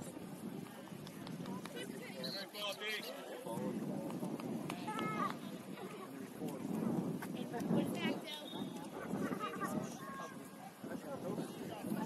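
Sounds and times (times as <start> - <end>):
murmur of talk: 0.0 - 12.0.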